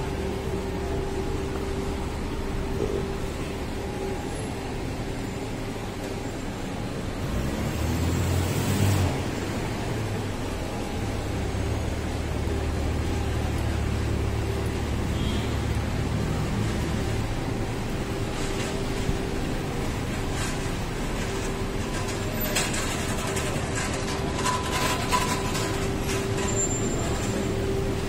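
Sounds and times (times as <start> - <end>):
cars passing: 0.0 - 28.0
low engine rumble: 0.0 - 28.0.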